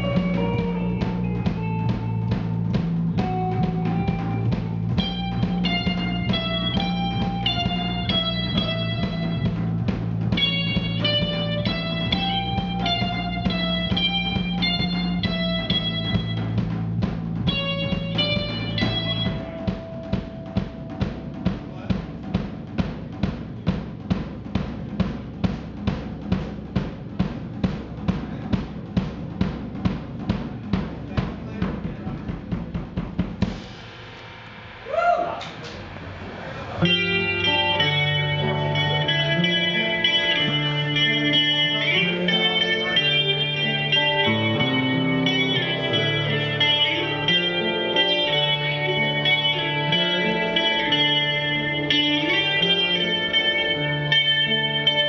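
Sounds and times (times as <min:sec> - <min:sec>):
electric guitars: 0:00.0 - 0:22.9, 0:35.6 - 0:55.0
bass notes: 0:00.0 - 0:33.6, 0:34.8 - 0:55.0
drum kit: 0:00.0 - 0:55.0.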